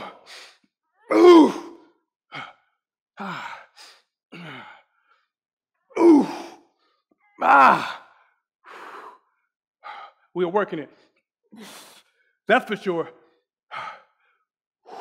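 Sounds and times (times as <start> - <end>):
man groaning and exhaling: 1.1 - 2.5, 3.2 - 4.8, 5.9 - 6.6, 7.4 - 8.1.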